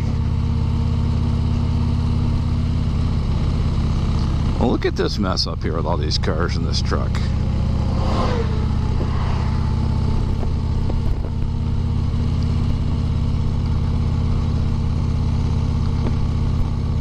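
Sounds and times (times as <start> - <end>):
motorcycle engine cruising: 0.0 - 17.0
truck passing by: 6.3 - 12.6
wind rush: 7.6 - 11.4.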